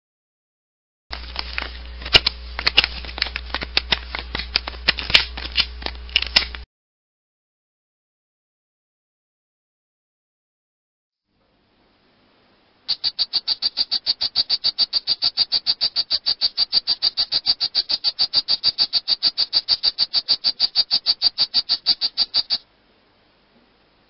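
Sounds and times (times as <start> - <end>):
frog trilling: 12.9 - 22.6.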